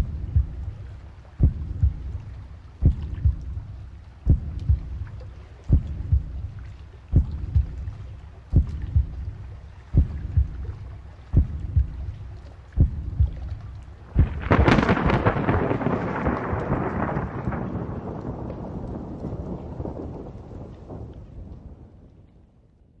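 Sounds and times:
thunder crash rumbling: 0:00.0 - 0:00.6, 0:14.2 - 0:22.0
low heartbeat thumps: 0:00.0 - 0:17.2
thunder rumbling: 0:00.0 - 0:22.7.

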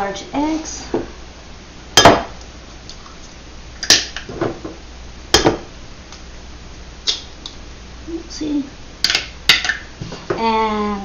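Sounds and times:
eggs cracking: 0:03.8 - 0:04.3.

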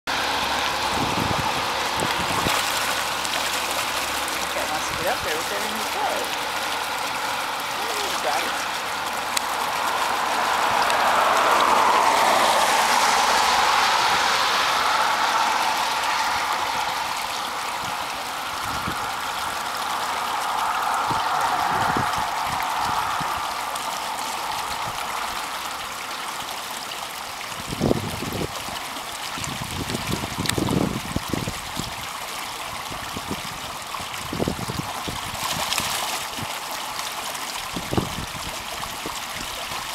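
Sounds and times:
creek water babbling: 0:00.1 - 0:39.9.

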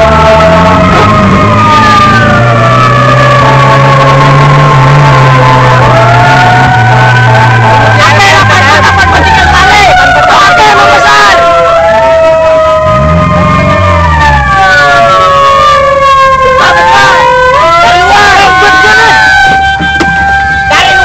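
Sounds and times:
emergency vehicle sirens wailing: 0:00.0 - 0:21.0.

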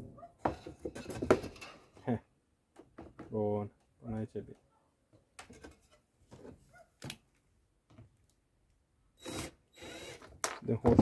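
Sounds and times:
wooden frame knocking and scraping: 0:00.4 - 0:02.0, 0:02.8 - 0:03.4, 0:10.5 - 0:11.0.

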